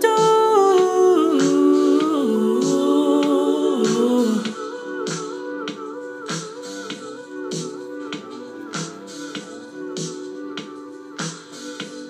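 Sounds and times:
man humming in harmonies: 0:00.0 - 0:12.0.

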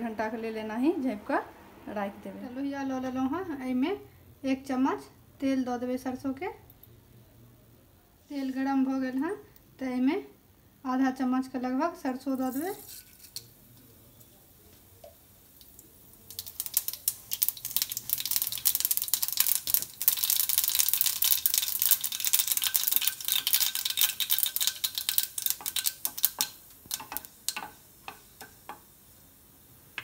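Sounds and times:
spatula stirring seeds: 0:12.4 - 0:29.1
mustard seeds popping in hot oil: 0:12.4 - 0:30.0.

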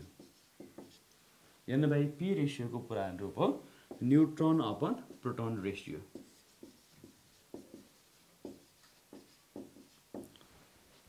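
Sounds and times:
marker writing on whiteboard: 0:00.0 - 0:01.1, 0:03.5 - 0:10.4.

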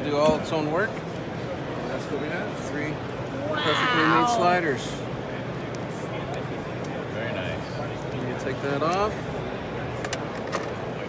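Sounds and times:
busy exhibition hall din: 0:00.0 - 0:11.0.

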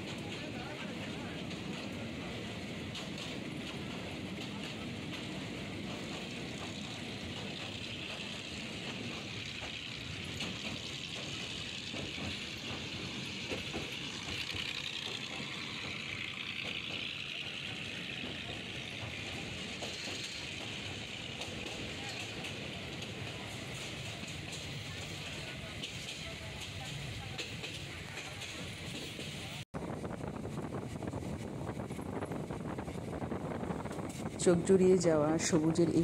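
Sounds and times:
train wheels rumbling on track: 0:00.0 - 0:36.0.

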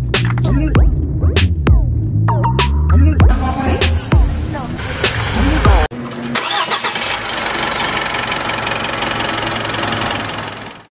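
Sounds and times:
engine starting and idling: 0:04.8 - 0:10.9.

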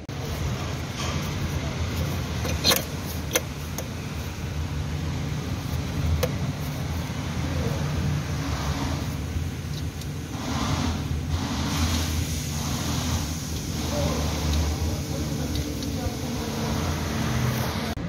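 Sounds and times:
machinery engine drone: 0:00.0 - 0:18.0.

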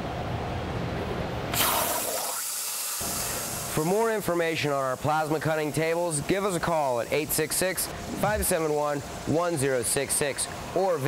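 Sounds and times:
plasma torch hissing: 0:01.5 - 0:11.0
low hum: 0:07.9 - 0:09.3.

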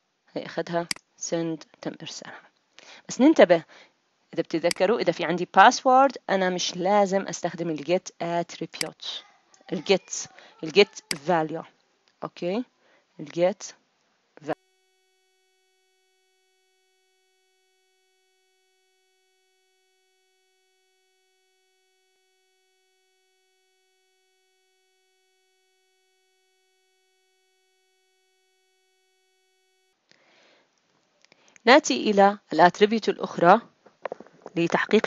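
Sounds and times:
faint steady electronic tone: 0:00.0 - 0:30.7.

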